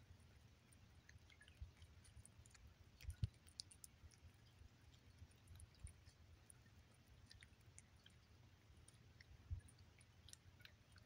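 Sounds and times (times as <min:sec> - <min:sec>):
cat eating wet food: 0:00.0 - 0:11.0.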